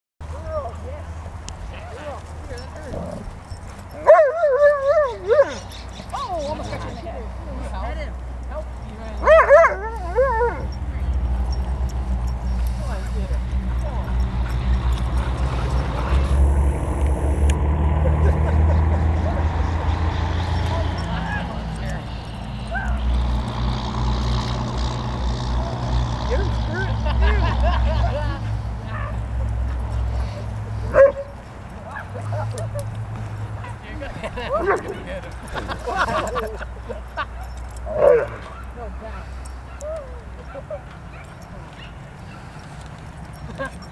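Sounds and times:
dog barking: 0:04.0 - 0:06.3, 0:09.2 - 0:10.7, 0:30.9 - 0:32.4.

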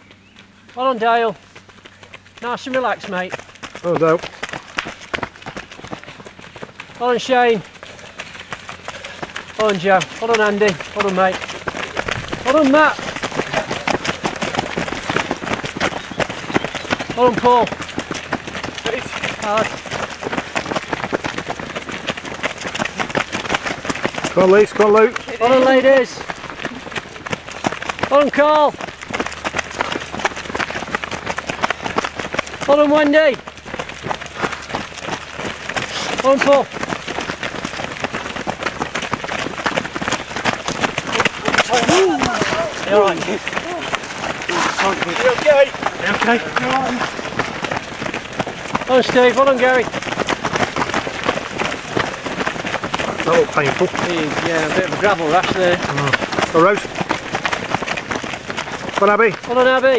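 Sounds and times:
runners' footsteps on a path: 0:00.0 - 0:59.9.

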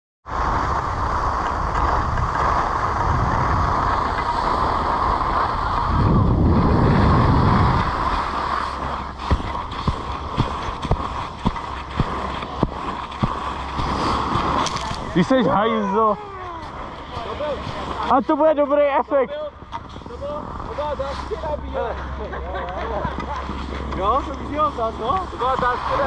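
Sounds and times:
wind rushing over microphone: 0:00.2 - 0:15.6
skis running on snow: 0:00.3 - 0:19.2, 0:19.8 - 0:22.0, 0:22.8 - 0:26.0
skis knocking over bumpy snow: 0:06.6 - 0:15.6.

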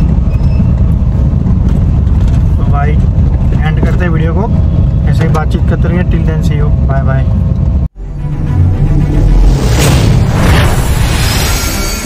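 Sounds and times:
car road and engine rumble: 0:00.0 - 0:10.9
man talking: 0:02.6 - 0:07.4.

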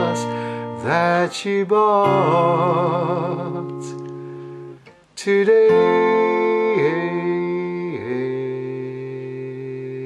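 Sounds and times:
acoustic guitar chords: 0:00.0 - 0:10.0
man singing long wordless notes: 0:00.0 - 0:10.0.

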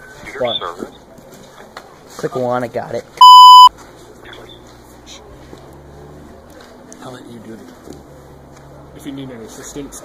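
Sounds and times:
electronic censor bleep: 0:03.2 - 0:03.7.

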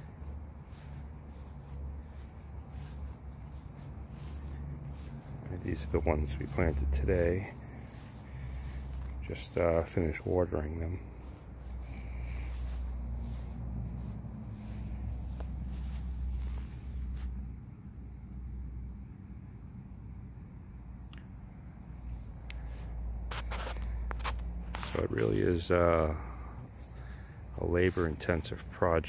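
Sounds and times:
insects chirring: 0:00.0 - 0:29.0.

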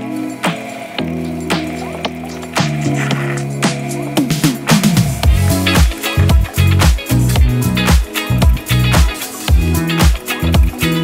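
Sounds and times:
bass and keyboard notes: 0:00.0 - 0:11.0.

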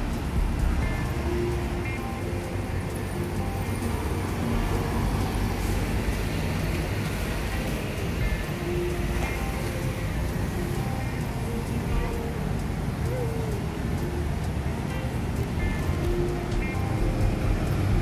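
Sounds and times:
chatter of passers-by: 0:00.0 - 0:18.0
music playing: 0:00.0 - 0:18.0
road traffic: 0:00.0 - 0:18.0.

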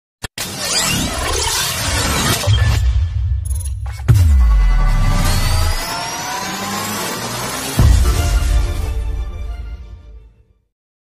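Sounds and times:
electronic music rising sweep: 0:03.9 - 0:09.3
deep bass hit: 0:04.1 - 0:05.8.

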